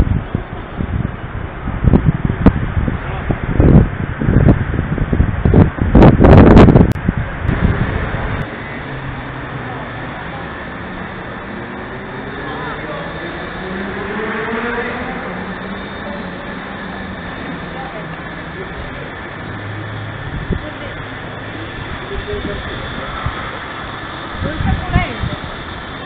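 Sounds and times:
city background noise: 0.0s - 26.0s
motor vehicle passing: 0.0s - 26.0s.

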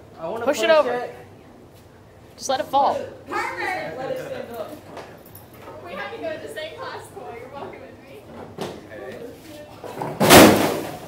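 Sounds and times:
books crashing onto floor: 10.0s - 11.0s.

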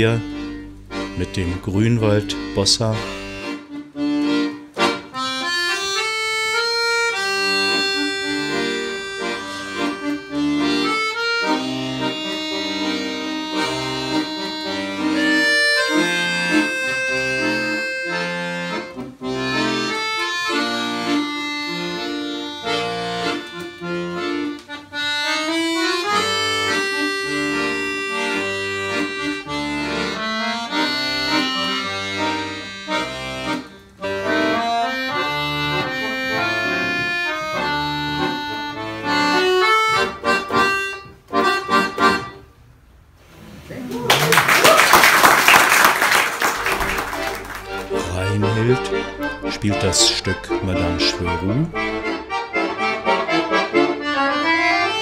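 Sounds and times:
accordion duet: 0.0s - 43.2s, 45.1s - 55.0s
applause: 44.1s - 48.0s.

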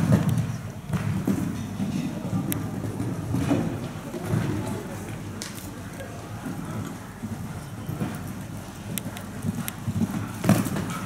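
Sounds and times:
horse hoofbeats on sand: 6.4s - 11.0s.

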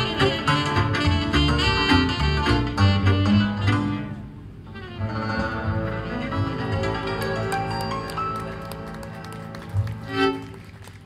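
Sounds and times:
plucked double bass: 0.0s - 10.6s
tenor saxophone: 0.0s - 10.7s.

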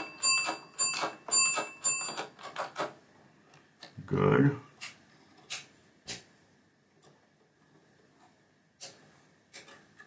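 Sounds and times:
bell-like ring: 0.0s - 2.3s.

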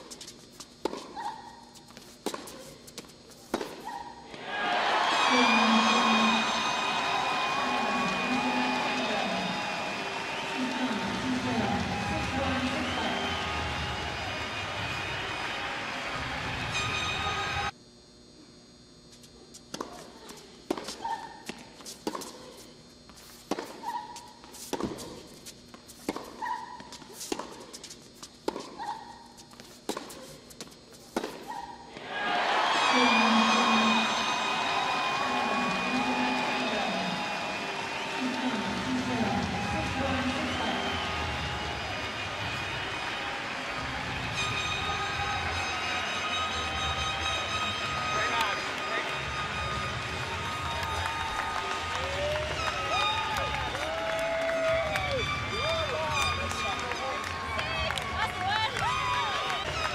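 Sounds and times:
rackets striking tennis ball: 0.0s - 4.5s, 19.7s - 22.6s, 23.4s - 32.1s
crowd cheering and clapping: 4.3s - 17.7s, 31.9s - 59.9s.

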